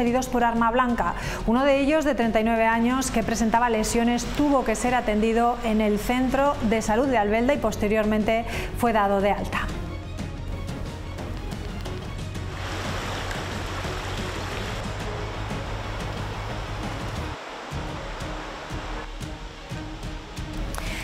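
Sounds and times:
background music with low bass: 6.4 - 21.0
river rushing over stones: 12.5 - 20.6.

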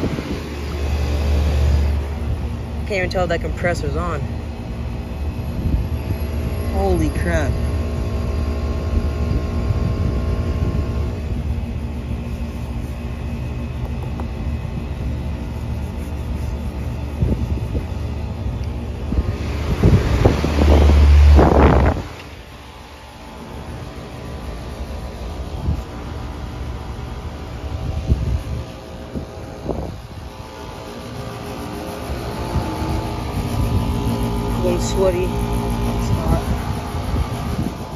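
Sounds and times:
air conditioner humming: 0.0 - 37.9.

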